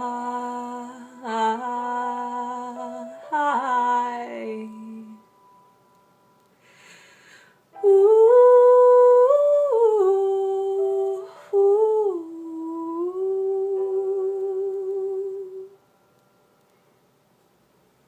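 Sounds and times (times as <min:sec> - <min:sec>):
woman humming a melody: 0:00.0 - 0:05.3, 0:07.8 - 0:15.8.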